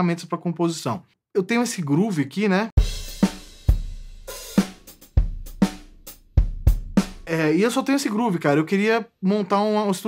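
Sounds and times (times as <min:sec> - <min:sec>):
drum kit playing steady beat: 0:02.8 - 0:07.8.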